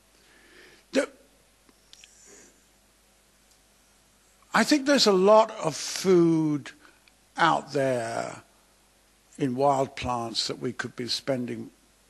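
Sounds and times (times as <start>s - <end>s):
breath: 0.2s - 0.9s, 2.0s - 2.7s, 6.8s - 7.1s
man saying a syllable: 0.9s - 1.2s, 9.4s - 11.7s.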